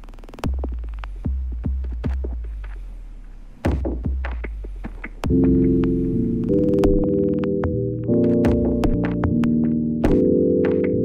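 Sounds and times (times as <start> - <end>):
held synthesizer chord: 5.3 - 11.0.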